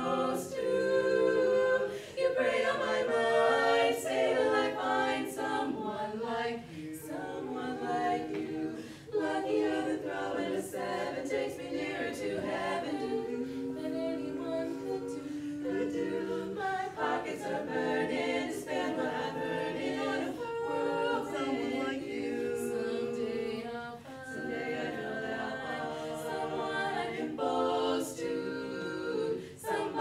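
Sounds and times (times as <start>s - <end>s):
women singing in close harmony: 0.0s - 30.0s.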